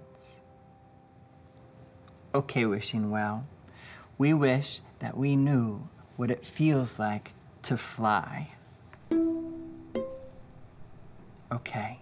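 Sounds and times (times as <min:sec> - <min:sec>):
plucked string notes: 0:09.0 - 0:11.4.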